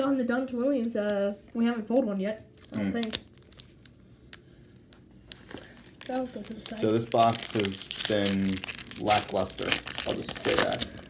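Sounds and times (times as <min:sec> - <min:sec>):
foil wrapper crinkling: 0:02.6 - 0:04.6, 0:05.2 - 0:11.0.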